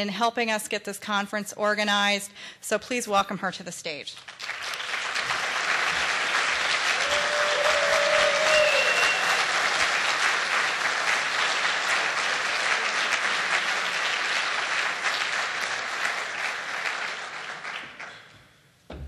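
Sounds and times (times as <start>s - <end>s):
audience applauding: 4.2s - 18.3s.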